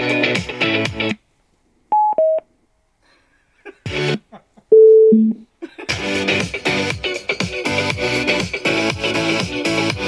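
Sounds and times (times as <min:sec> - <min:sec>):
music from a speaker: 0:00.0 - 0:01.2, 0:03.9 - 0:04.3, 0:05.9 - 0:10.0
electronic prompt beeps: 0:02.0 - 0:02.4, 0:04.7 - 0:05.4
falling two-tone beep: 0:04.7 - 0:05.4.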